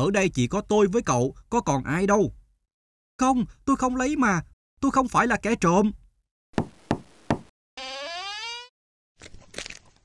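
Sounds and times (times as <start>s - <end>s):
knocks on wooden door: 6.6s - 7.5s
door creaking: 7.8s - 8.7s.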